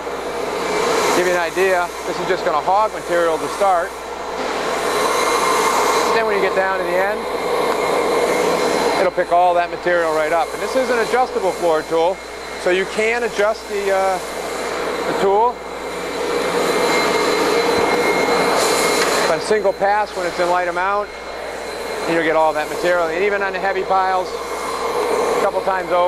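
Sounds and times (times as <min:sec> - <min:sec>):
vacuum rushing hiss: 0:00.0 - 0:26.0
faint steady whistle: 0:15.1 - 0:25.8.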